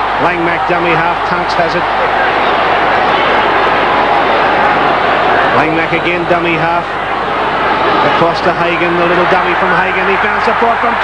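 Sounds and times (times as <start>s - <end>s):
stadium crowd din: 0.0s - 11.0s.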